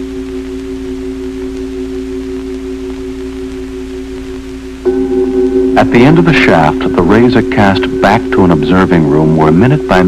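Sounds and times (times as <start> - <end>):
drone music with held tones: 0.0 - 10.0
low hum and hiss: 0.0 - 10.0.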